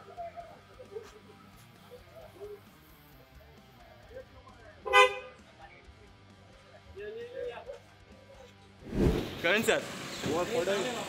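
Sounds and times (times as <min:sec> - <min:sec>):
car horn toot: 0:04.9 - 0:05.3.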